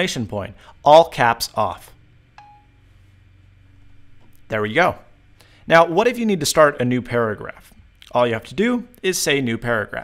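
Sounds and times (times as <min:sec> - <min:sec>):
steady low hum: 0:00.0 - 0:10.0
phone tap click: 0:02.4 - 0:02.6
short chime: 0:02.4 - 0:02.8.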